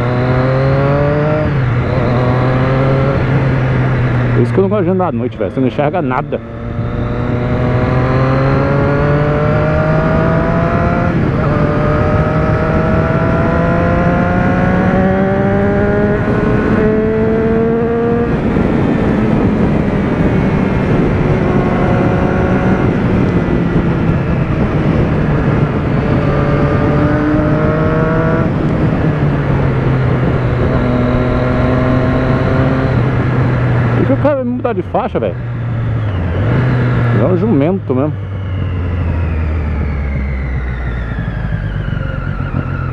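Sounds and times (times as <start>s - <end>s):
motorcycle engine accelerating: 0.0s - 42.9s
road noise: 0.0s - 42.9s
rushing wind: 0.0s - 42.9s.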